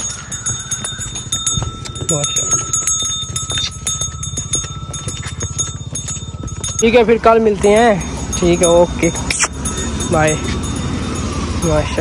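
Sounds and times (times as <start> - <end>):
bull hooves clicking on dirt: 0.0 - 12.0
faint high ringing tone: 0.0 - 12.0.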